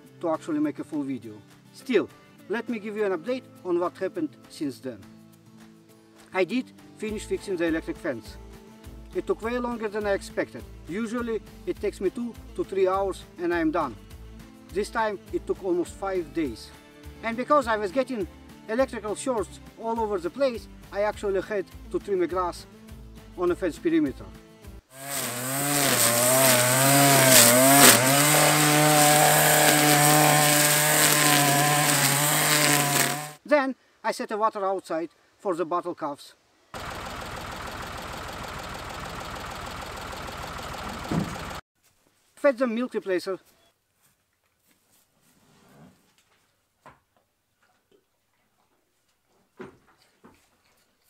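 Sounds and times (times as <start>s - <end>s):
string trimmer engine running: 24.9s - 33.4s, 36.8s - 41.6s
sharp crack: 25.1s - 33.3s
rustling in straw: 25.1s - 33.4s.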